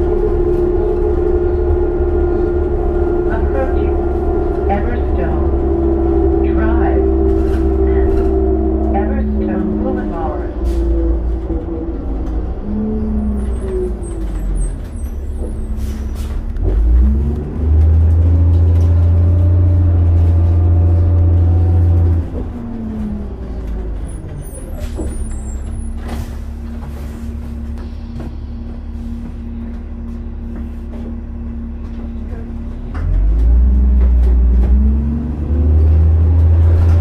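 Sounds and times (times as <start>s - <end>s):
bus diesel engine rumble: 0.0s - 37.0s.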